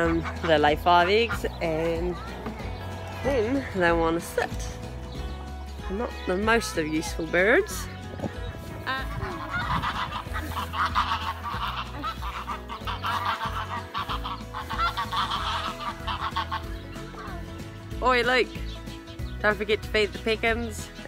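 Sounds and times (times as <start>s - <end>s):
geese calling: 0.0s - 20.8s.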